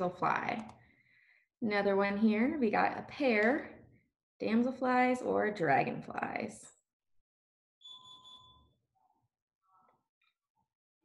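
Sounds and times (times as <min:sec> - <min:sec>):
short electronic tone: 0:07.8 - 0:08.7.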